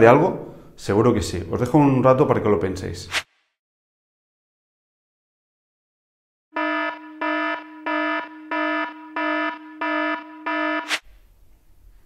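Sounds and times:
buzzy timer alarm beeps: 6.6 - 11.0.

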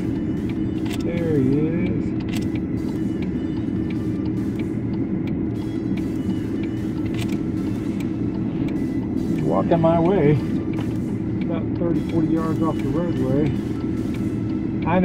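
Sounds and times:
vehicle engine idling: 0.0 - 15.0.

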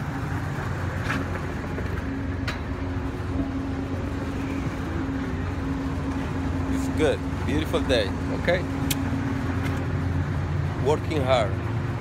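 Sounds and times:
ventilation machinery hum: 0.0 - 12.0.

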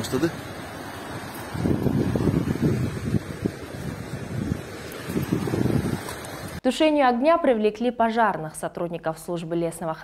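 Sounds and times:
wind buffeting a microphone: 0.0 - 6.6.

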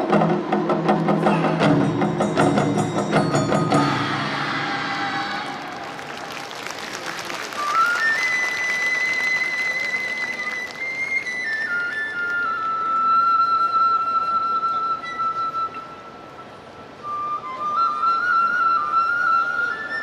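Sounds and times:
festival drums beating: 0.0 - 6.5
bamboo flute melody: 0.0 - 20.0
applause: 4.9 - 12.4.

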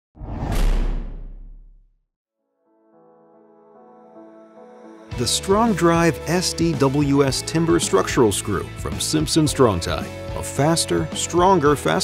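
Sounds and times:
whoosh with deep bass: 0.2 - 1.8.

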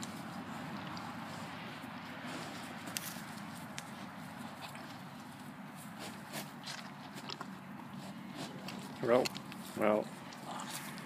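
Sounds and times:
hooves shuffling on dry grass: 0.0 - 11.0
steady outdoor hiss: 0.0 - 11.0.

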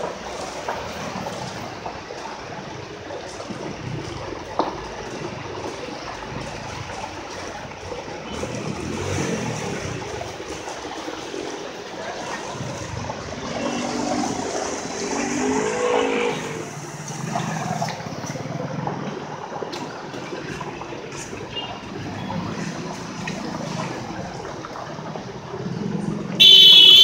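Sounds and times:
water gushing: 0.0 - 26.6
vehicles passing through water: 0.0 - 27.0.

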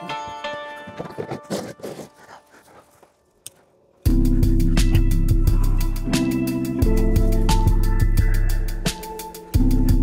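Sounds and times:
background music: 0.0 - 3.0, 4.0 - 10.0.

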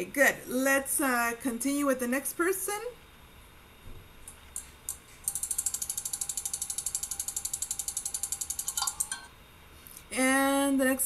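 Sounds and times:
rapid mechanical clicks: 4.9 - 9.2.

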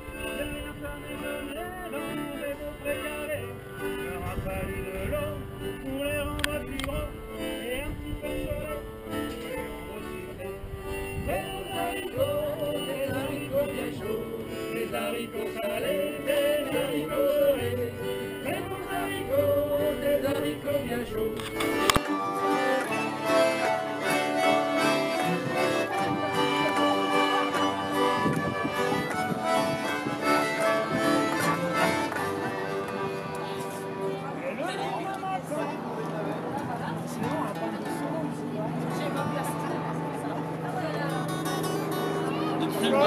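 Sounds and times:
button accordion playing a tune: 0.0 - 4.8, 5.4 - 35.9
acoustic plucked string music: 0.0 - 43.0
people talking: 22.9 - 43.0.

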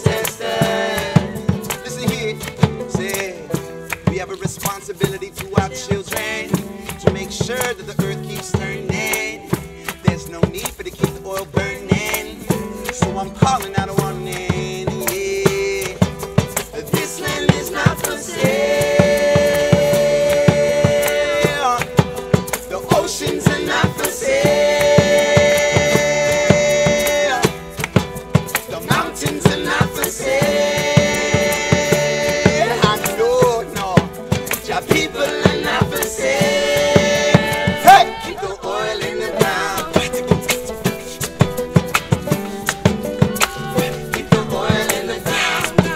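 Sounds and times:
voices singing held notes: 0.0 - 3.7, 5.0 - 9.9, 10.7 - 45.9
banjo: 0.0 - 45.9
djembe: 0.0 - 45.9
strummed acoustic guitars: 0.0 - 45.9.

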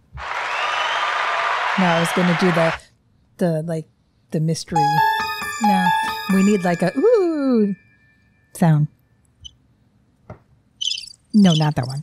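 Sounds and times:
high pulsing electronic chirps: 4.8 - 8.1, 10.8 - 12.0.

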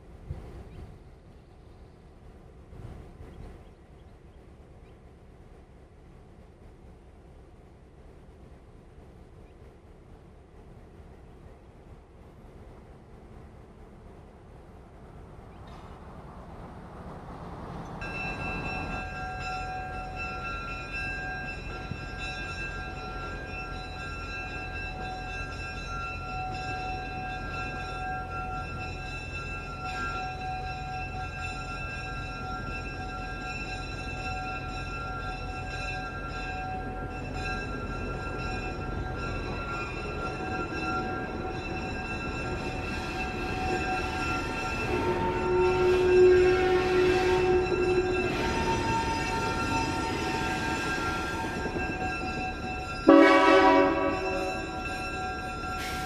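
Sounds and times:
locomotive engine rumble: 0.0 - 56.0.

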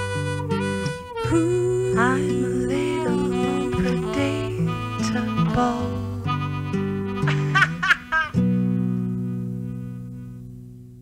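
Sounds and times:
guitar bending notes: 0.0 - 11.0
guitar chord ringing: 0.0 - 11.0.

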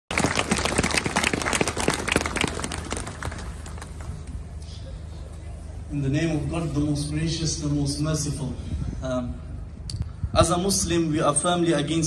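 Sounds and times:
small crowd clapping: 0.1 - 4.3.

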